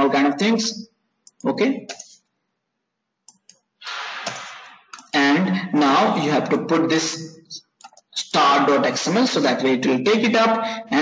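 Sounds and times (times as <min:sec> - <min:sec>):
keyboard and mouse clicks: 0:01.2 - 0:02.3, 0:03.2 - 0:05.2, 0:07.8 - 0:08.1.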